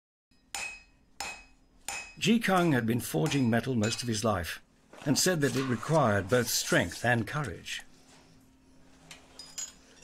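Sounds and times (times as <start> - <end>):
hammer striking iron: 0.3 - 4.2.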